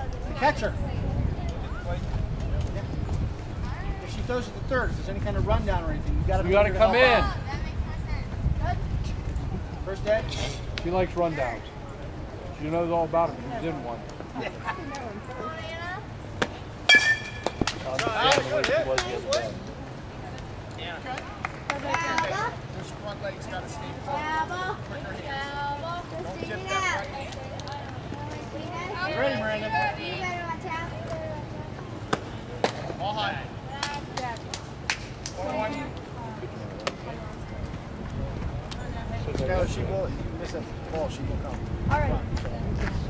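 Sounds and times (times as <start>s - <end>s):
bat striking ball with ringing ping: 16.9s - 17.9s.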